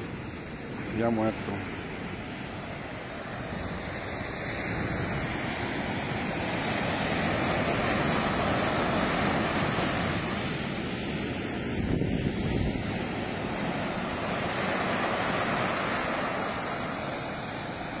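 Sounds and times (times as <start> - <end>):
waves breaking on beach: 0.0 - 18.0
wind buffeting microphone: 1.7 - 18.0.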